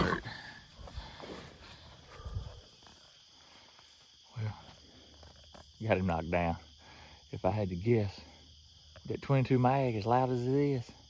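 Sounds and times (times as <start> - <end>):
boar grunting: 0.0 - 1.2.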